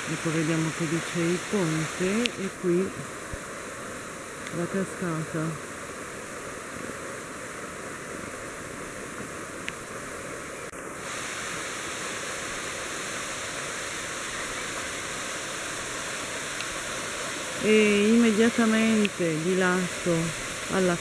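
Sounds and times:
waterfall rushing and splashing: 0.0 - 21.0.

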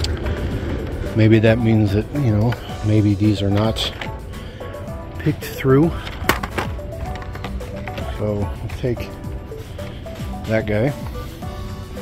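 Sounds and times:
quiet background music: 0.0 - 12.0
cards knocking on metal hooks: 6.0 - 8.1.

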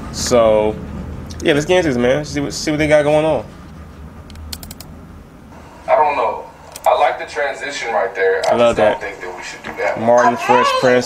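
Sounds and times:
faint low hum: 0.0 - 11.0
computer mouse clicks: 4.3 - 4.9.

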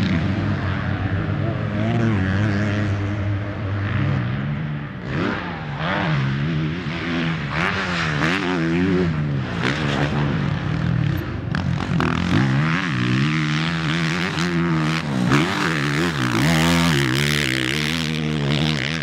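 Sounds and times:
motocross bike engine revving: 0.0 - 19.0.

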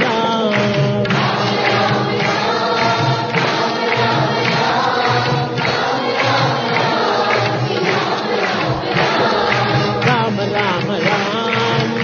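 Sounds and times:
group singing in chorus: 0.0 - 12.0
steady beat: 0.0 - 12.0.

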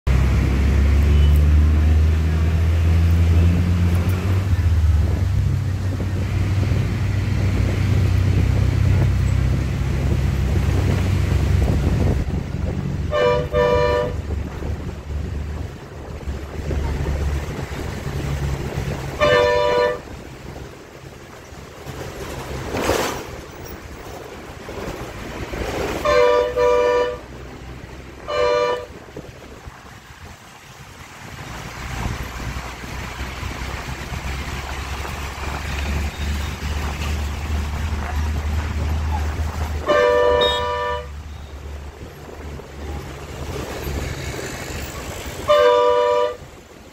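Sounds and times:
traffic rumble: 0.0 - 46.9
wind: 0.0 - 46.9
vehicle passing: 0.1 - 46.9
two-tone vehicle horn honking: 13.1 - 14.3, 19.1 - 20.1, 26.0 - 27.3, 28.2 - 29.0, 39.8 - 41.6, 45.4 - 46.5.

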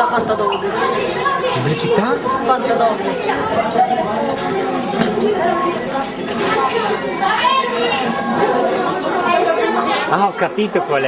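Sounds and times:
boys chattering: 0.0 - 11.0.

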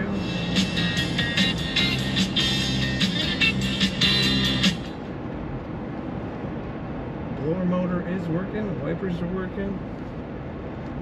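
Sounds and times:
music with a beat on car stereo: 0.0 - 5.0
car engine and road hum: 0.0 - 11.0.

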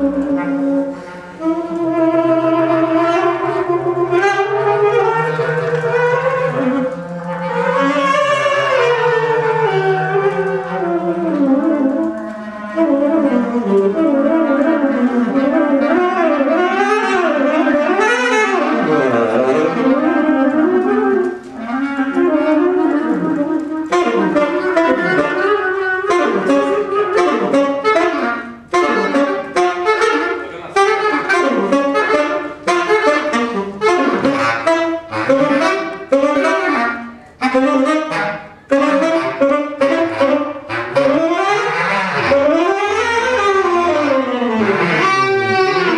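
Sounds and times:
bass clarinet playing: 0.0 - 45.9
tenor saxophone melody: 0.0 - 45.9.

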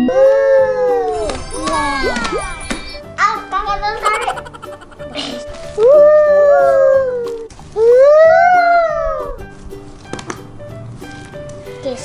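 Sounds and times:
background music: 4.0 - 6.1.

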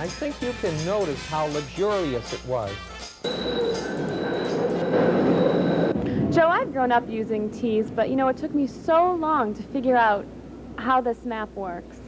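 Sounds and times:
steady whining tones: 3.2 - 7.8
subway wheels rumbling on rails: 3.3 - 8.8.

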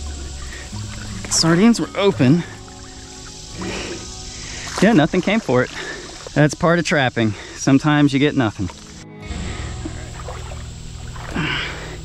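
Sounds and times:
water rushing: 0.0 - 12.0
water sloshing and trickling: 0.0 - 12.0.

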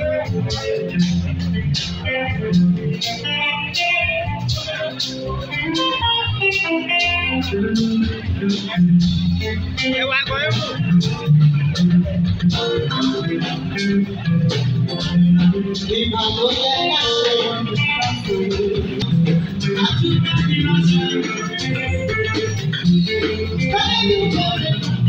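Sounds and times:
bass guitar: 0.0 - 25.0
drum kit beat: 0.0 - 25.0
electric guitar lines: 0.0 - 25.0.

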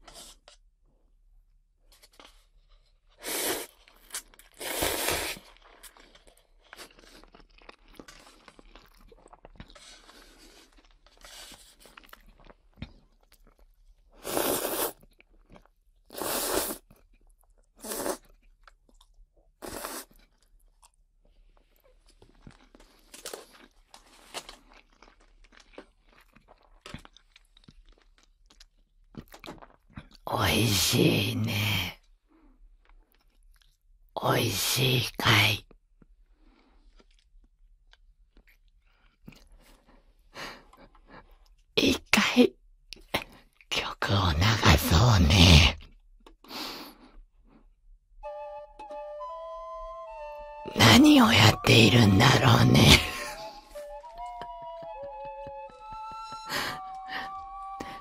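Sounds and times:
noodles slurped: 3.2 - 12.6, 14.1 - 17.1, 17.7 - 18.5, 19.6 - 20.4
mouth and chewing sounds: 3.3 - 30.3, 36.0 - 41.7.

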